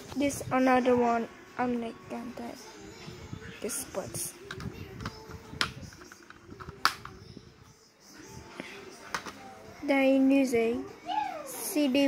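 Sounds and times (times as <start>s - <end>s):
plastic dvd case clicking: 4.5s - 7.2s.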